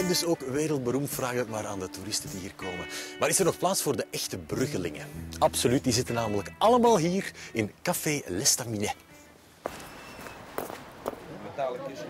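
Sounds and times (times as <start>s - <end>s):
outdoor background noise: 7.2s - 12.0s
footsteps on a street: 9.6s - 11.3s.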